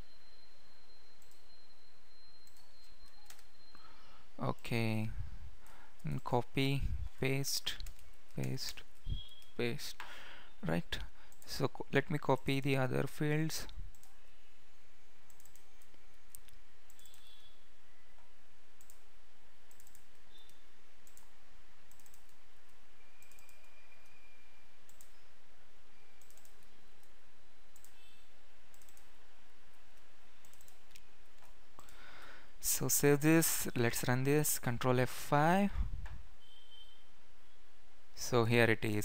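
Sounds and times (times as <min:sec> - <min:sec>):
keyboard and mouse clicks: 0:02.4 - 0:03.5, 0:15.3 - 0:17.4, 0:18.8 - 0:19.0, 0:19.7 - 0:21.3, 0:21.9 - 0:22.4, 0:23.2 - 0:23.7, 0:26.2 - 0:27.2, 0:27.8 - 0:28.0, 0:28.7 - 0:29.1, 0:30.4 - 0:32.0.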